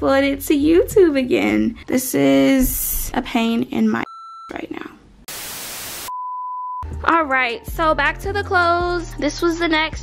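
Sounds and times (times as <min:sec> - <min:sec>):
loud white-noise static burst: 0:05.3 - 0:06.1
steady high beep tone: 0:06.1 - 0:06.8.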